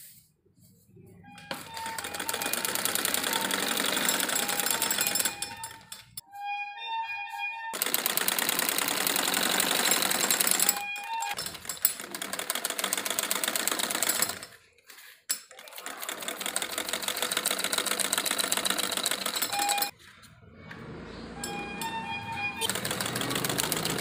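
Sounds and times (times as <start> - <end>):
sewing machine stitching: 1.3 - 6.2, 7.8 - 20.0, 21.8 - 24.0.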